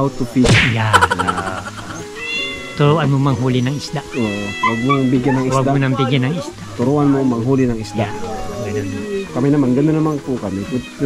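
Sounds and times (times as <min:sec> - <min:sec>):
elderly man laughing: 0:00.9 - 0:02.0.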